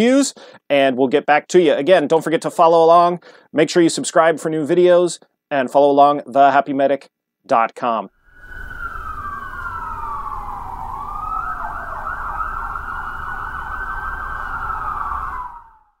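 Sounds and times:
siren wailing and yelping: 8.2s - 16.0s.

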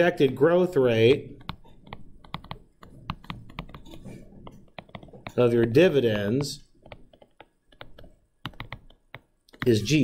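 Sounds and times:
stylus tapping on tablet screen: 1.4s - 9.8s.

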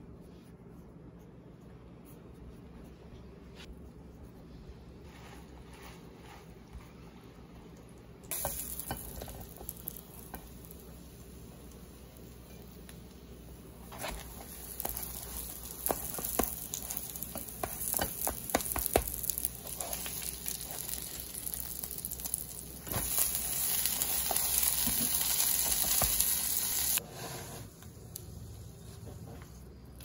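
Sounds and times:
plastic spatula scraping a pan: 5.0s - 6.7s
food sizzling in a frying pan: 8.3s - 27.0s.

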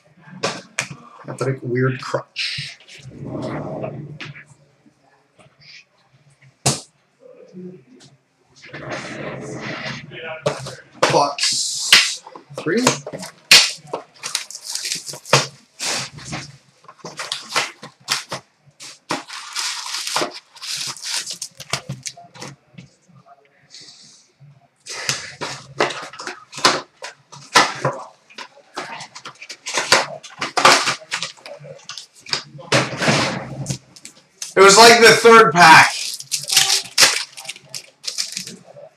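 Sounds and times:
cards clicking and rustling: 10.5s - 22.6s, 24.9s - 32.5s, 35.8s - 38.6s
pack wrapper crinkling: 13.2s - 16.1s, 17.0s - 22.4s, 35.8s - 38.7s.

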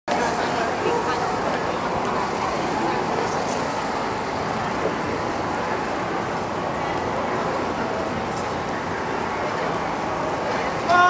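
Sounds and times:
voices of passers-by: 0.1s - 11.0s.

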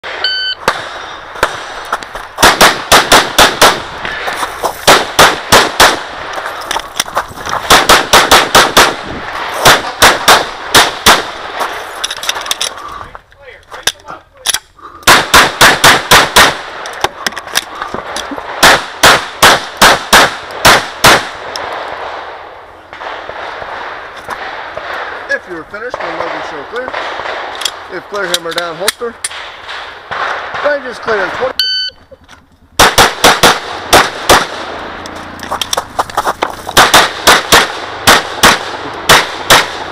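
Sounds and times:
shot timer beep: 0.2s - 0.6s, 31.6s - 32.1s
rapid pistol fire: 2.4s - 4.0s, 4.8s - 6.2s, 7.6s - 11.6s, 15.1s - 16.8s, 18.5s - 22.2s, 26.0s - 27.6s, 32.8s - 34.8s, 36.8s - 39.9s.

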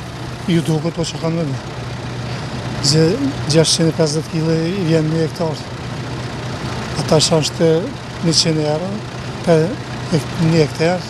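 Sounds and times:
diesel engine humming: 0.0s - 11.0s
man talking: 0.5s - 1.6s, 2.8s - 5.7s, 7.0s - 11.0s.

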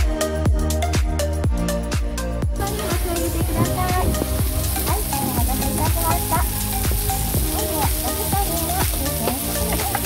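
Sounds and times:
background music with steady beat: 0.0s - 10.0s
food sizzling on hot iron plate: 2.6s - 10.0s.

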